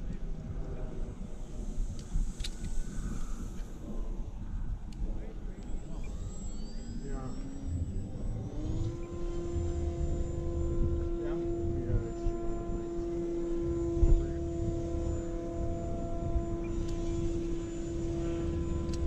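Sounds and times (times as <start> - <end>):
low rumble: 0.0 - 19.0
model airplane motors whining: 0.0 - 19.0.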